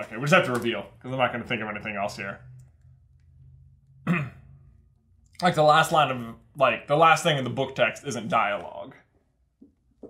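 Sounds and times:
man clearing his throat: 4.0s - 4.5s.

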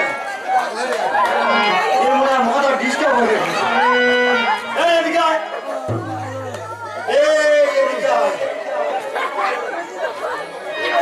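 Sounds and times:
voices chattering: 0.0s - 11.0s.

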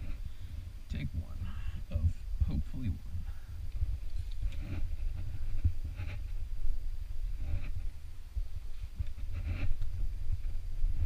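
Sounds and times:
wind rumble on microphone: 0.0s - 11.0s
breathy sounds: 1.3s - 2.0s.

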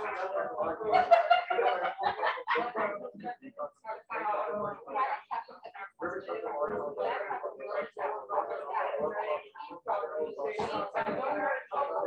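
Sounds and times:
overlapping voices reading aloud: 0.0s - 3.7s.

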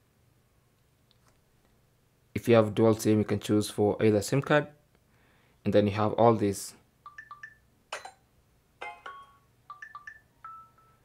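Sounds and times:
phone notification chimes and blips: 7.1s - 8.2s, 8.8s - 11.0s.

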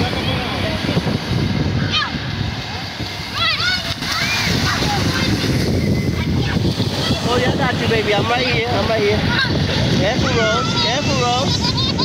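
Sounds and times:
children splashing: 0.0s - 12.0s
surf washing in: 0.0s - 12.0s
children shouting: 1.8s - 2.3s, 3.3s - 7.5s, 9.2s - 12.0s.

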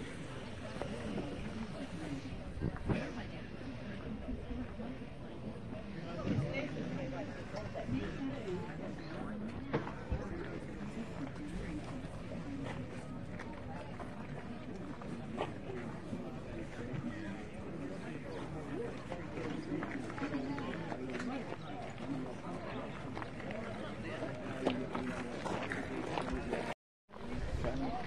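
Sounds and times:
distant people talking: 0.0s - 28.0s.

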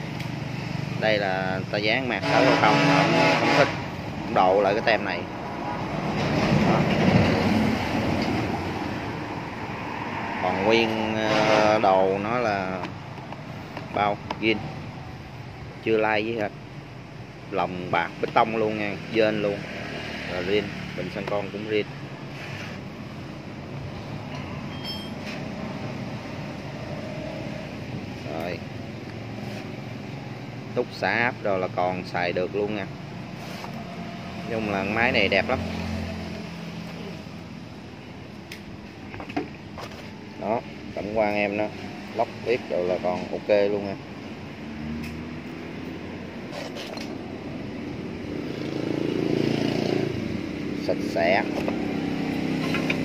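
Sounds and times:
faint thin tone: 24.4s - 25.3s.

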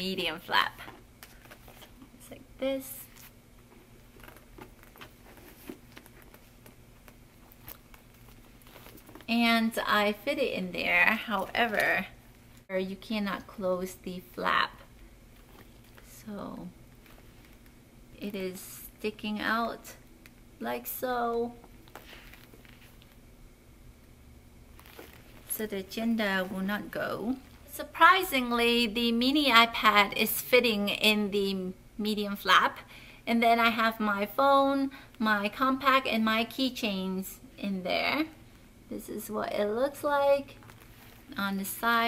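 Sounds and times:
low steady hum: 0.0s - 42.0s
leather rustling: 3.1s - 9.3s, 21.7s - 23.2s, 24.7s - 26.7s, 40.6s - 41.3s
handbag clicks and rustles: 24.8s - 25.6s.

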